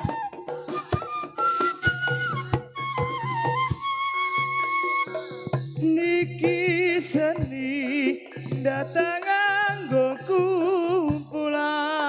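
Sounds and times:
flute melody: 0.0s - 5.6s
drum beats: 0.0s - 12.0s.

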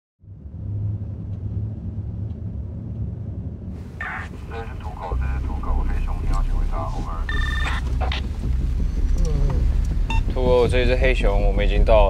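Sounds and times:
car interior rumble: 0.3s - 12.0s.

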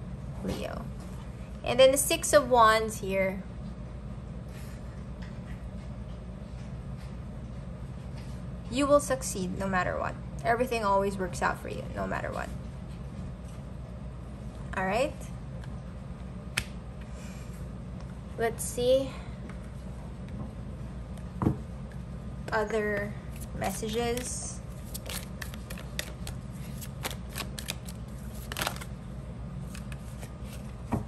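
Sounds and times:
steady low hum: 0.0s - 31.0s
cards being shuffled: 23.3s - 29.0s, 29.6s - 31.0s.

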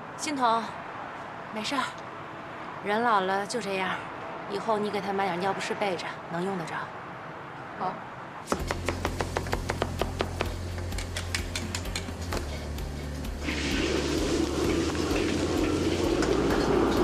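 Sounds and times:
knife chopping on cutting board: 8.5s - 10.6s
food sizzling in a wok: 12.4s - 17.0s
gas burner flame rushing: 13.3s - 17.0s.

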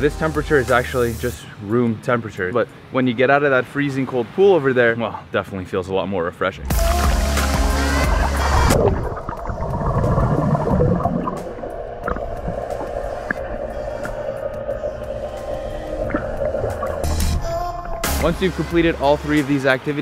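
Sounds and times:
background music: 0.0s - 1.8s, 6.6s - 20.0s
muffled underwater bubbling: 7.9s - 19.3s.

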